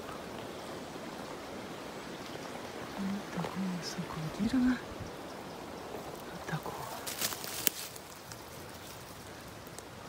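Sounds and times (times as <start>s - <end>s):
faint steady hiss: 0.0s - 10.0s
dry leaves crackling underfoot: 5.6s - 10.0s.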